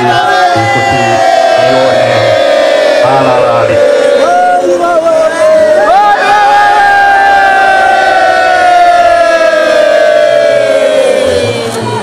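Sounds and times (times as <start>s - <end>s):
crowd sound: 0.0s - 12.0s.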